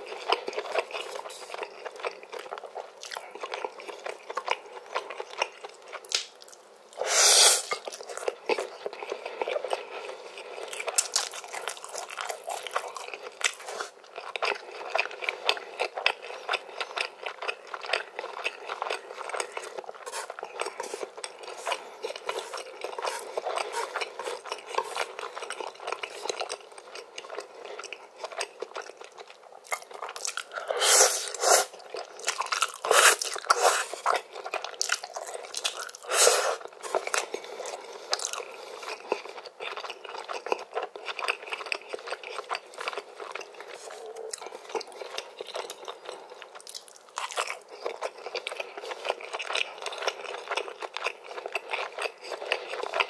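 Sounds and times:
wet chewing: 7.6s - 53.0s
noodle slurping: 32.8s - 34.0s.

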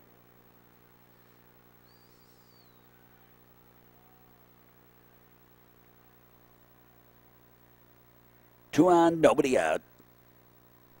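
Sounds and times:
low electrical hum: 0.0s - 11.0s
faint bird chirp: 0.9s - 5.3s.

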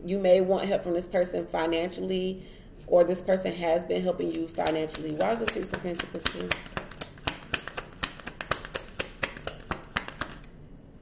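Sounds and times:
cards being shuffled: 4.2s - 10.5s.

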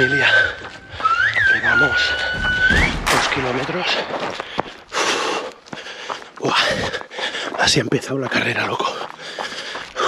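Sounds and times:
footfalls on gravel: 0.0s - 10.0s
person breathing hard: 4.3s - 7.6s, 9.0s - 10.0s.

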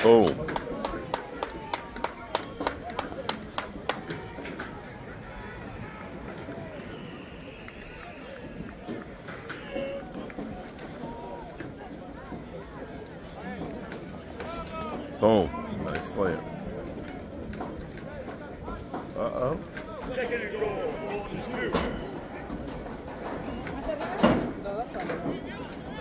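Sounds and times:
faint background voices: 0.0s - 26.0s.

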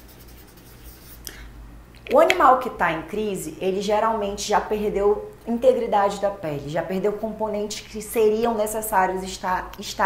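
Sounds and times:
marker writing on paper: 0.0s - 1.2s
low steady hum: 0.0s - 10.0s.

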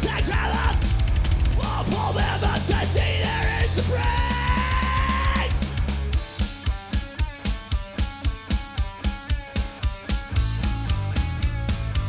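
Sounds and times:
male vocalist yelling: 0.0s - 0.8s, 1.6s - 5.6s
electric guitar: 0.0s - 12.0s
steady drum beat: 0.0s - 12.0s.

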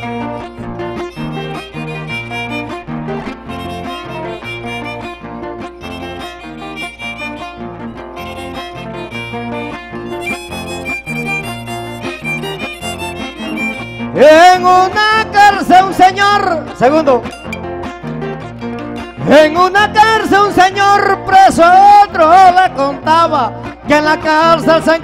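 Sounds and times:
violin melody: 0.0s - 21.4s
acoustic guitar accompaniment: 0.0s - 25.0s.

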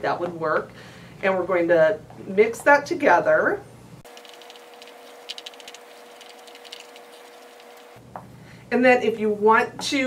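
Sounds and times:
stick scraping plastic bowl: 4.1s - 8.0s.

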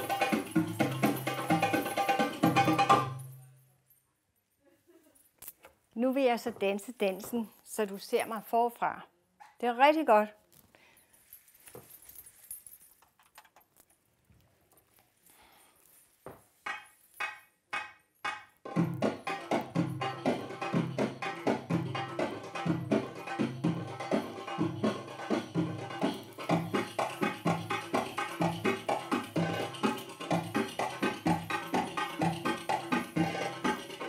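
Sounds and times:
fast drum rhythm: 0.0s - 3.2s, 18.7s - 34.0s.

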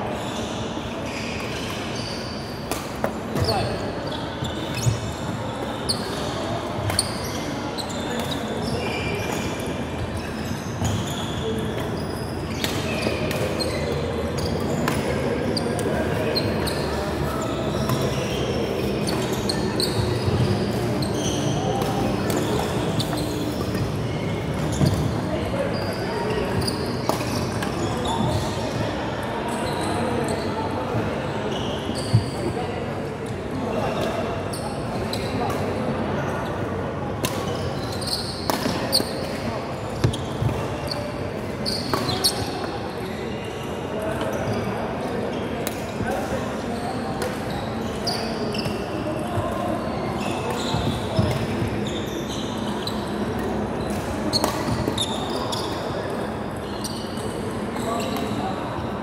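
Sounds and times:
shoes squeaking on floor: 0.0s - 32.9s, 37.3s - 58.8s
rackets hitting shuttlecock: 38.5s - 39.4s.

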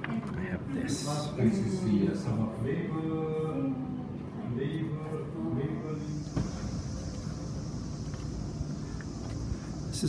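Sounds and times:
insects droning: 6.0s - 10.0s.

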